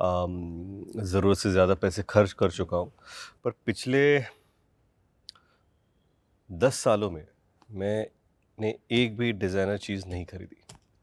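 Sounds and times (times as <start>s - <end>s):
man speaking: 0.0s - 4.4s, 6.5s - 10.6s.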